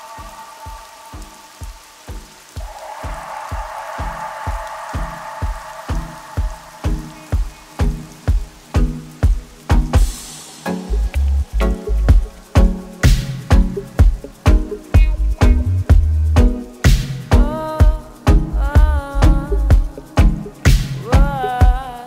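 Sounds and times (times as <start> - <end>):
hissing swell: 0.0 - 14.9
dub music with steady pulse: 0.0 - 22.0.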